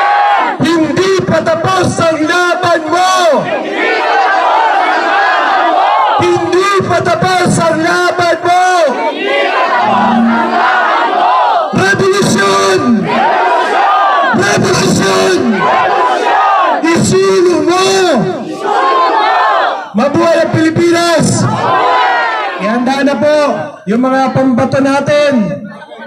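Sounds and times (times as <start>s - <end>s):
crowd shouting a slogan: 0.0s - 0.7s, 2.7s - 6.5s, 8.1s - 16.9s, 17.7s - 24.6s.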